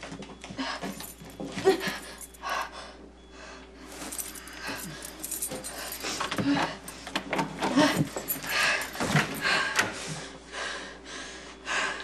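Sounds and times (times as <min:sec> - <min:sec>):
woman breathing hard and straining: 0:00.5 - 0:12.0
restraints and chair rattling: 0:04.2 - 0:09.9.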